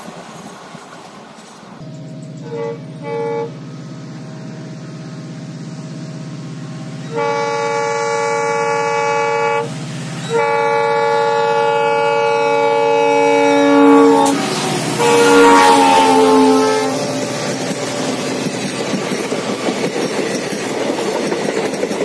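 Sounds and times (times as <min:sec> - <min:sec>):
diesel locomotive engine drone: 0:00.0 - 0:22.0
locomotive air horn: 0:02.4 - 0:03.6, 0:07.1 - 0:18.5.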